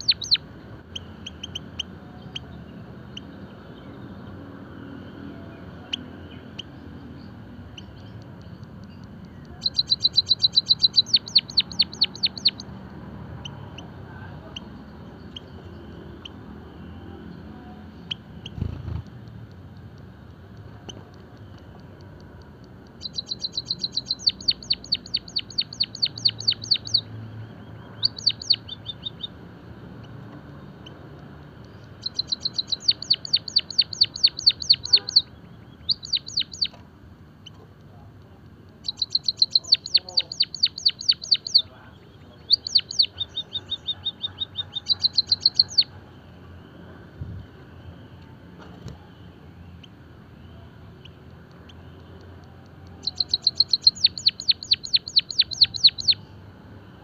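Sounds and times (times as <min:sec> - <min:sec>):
bird song of rapid ticking notes: 0:00.0 - 0:57.0.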